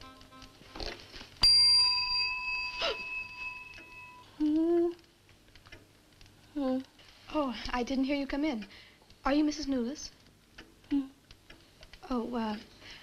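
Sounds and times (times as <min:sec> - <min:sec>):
desk bell ringing: 0:01.4 - 0:04.2.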